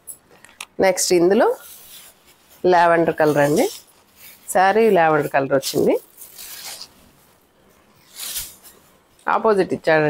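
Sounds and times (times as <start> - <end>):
silk cloth rustling: 1.2 - 10.0.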